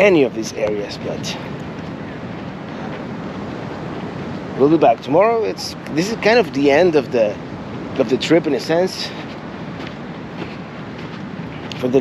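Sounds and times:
ocean surf rushing: 0:00.0 - 0:12.0
wind on microphone: 0:00.0 - 0:12.0.

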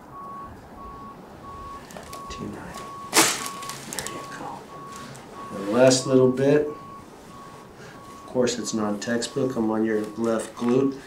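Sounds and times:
steady electronic beeping: 0:00.1 - 0:10.7.

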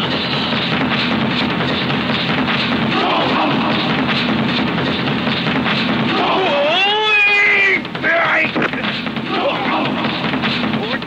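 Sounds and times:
film soundtrack: 0:00.0 - 0:11.0.

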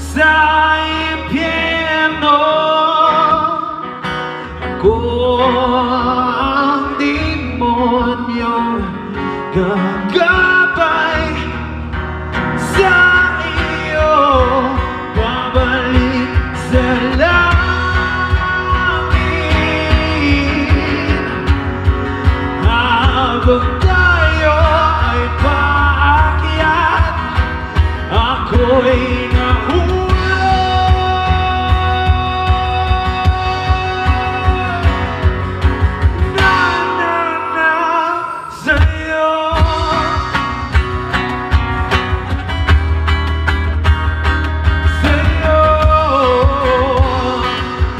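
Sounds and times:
man singing: 0:00.0 - 0:41.5, 0:44.6 - 0:47.9
cajon beat: 0:00.0 - 0:47.9
strummed acoustic guitar: 0:00.0 - 0:47.9
low thumping percussion beat: 0:27.0 - 0:36.7.

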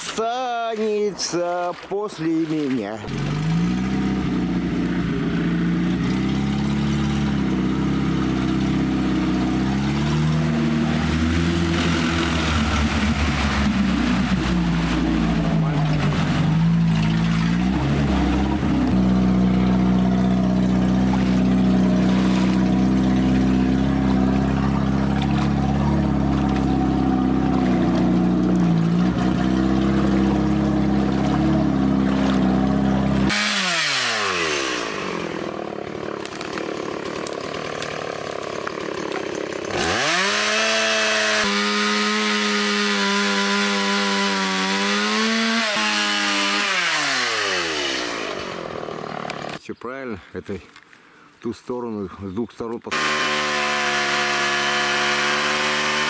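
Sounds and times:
off-road vehicle engine running: 0:00.0 - 0:49.6, 0:52.9 - 0:56.0.

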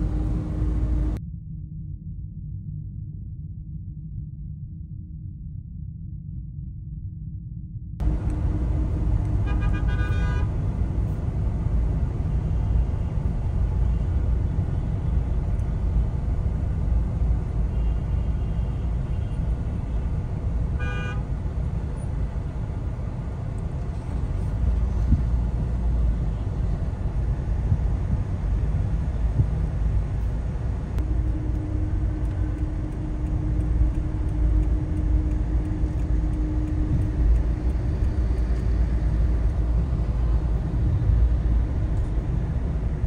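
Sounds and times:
city road traffic rumble: 0:00.0 - 0:01.2, 0:08.0 - 0:43.0
vehicle horn honking: 0:09.2 - 0:10.6, 0:20.8 - 0:21.3.

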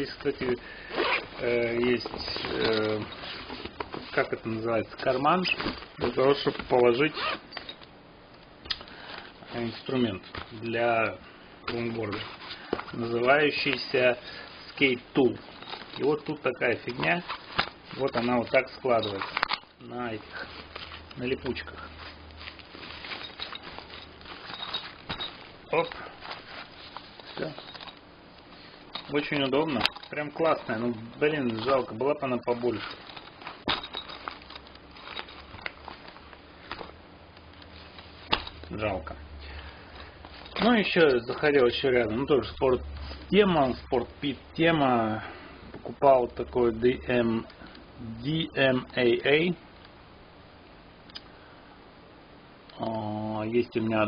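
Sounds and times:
nylon bag and straps handling: 0:00.0 - 0:07.8, 0:11.7 - 0:44.1.

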